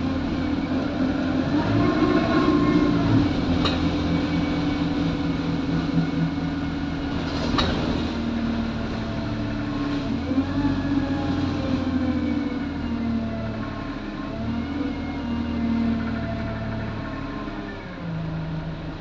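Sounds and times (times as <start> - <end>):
bus engine running: 0.0 - 19.0.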